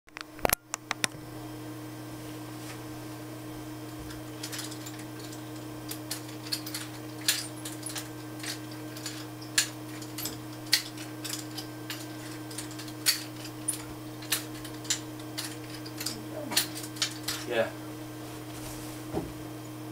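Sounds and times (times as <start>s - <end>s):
nunchaku chain clicking and rattling: 4.1s - 17.7s.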